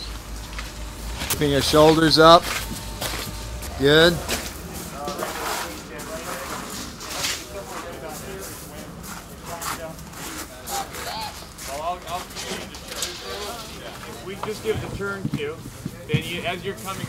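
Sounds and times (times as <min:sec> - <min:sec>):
steady low hum: 0:00.0 - 0:17.0
indistinct background talk: 0:00.8 - 0:17.0.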